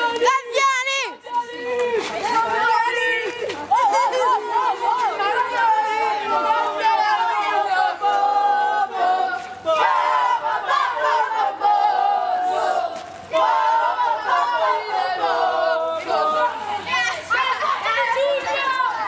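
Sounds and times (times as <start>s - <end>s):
children shouting and cheering: 0.0s - 19.0s
children chanting: 1.1s - 19.0s.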